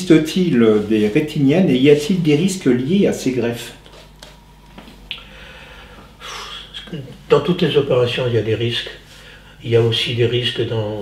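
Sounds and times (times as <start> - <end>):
man breathing in: 5.2 - 6.7, 9.1 - 9.6.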